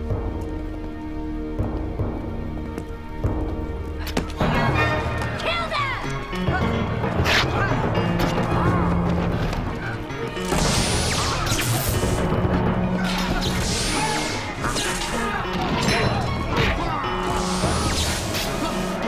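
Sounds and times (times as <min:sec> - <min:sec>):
dramatic music: 0:00.0 - 0:19.0.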